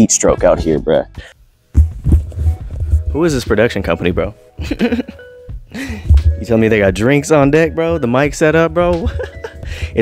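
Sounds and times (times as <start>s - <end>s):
microphone handling thump: 1.7s - 3.4s, 6.0s - 6.5s
low microphone handling rumble: 1.7s - 4.3s.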